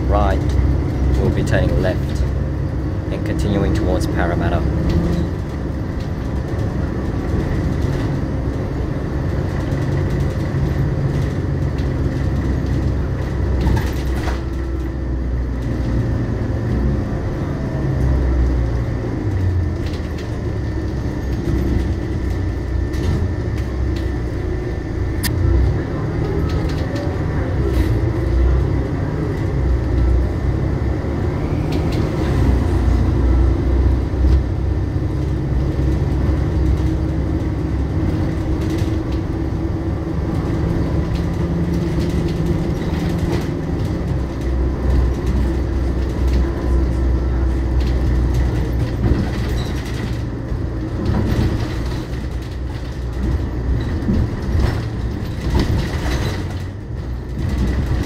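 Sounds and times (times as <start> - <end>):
diesel bus engine rumble: 0.0 - 58.0
road noise: 0.0 - 58.0.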